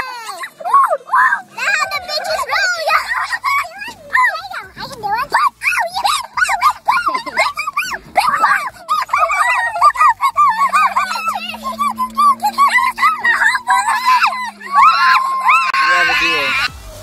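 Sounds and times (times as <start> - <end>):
children squealing and chattering: 0.0 - 17.0.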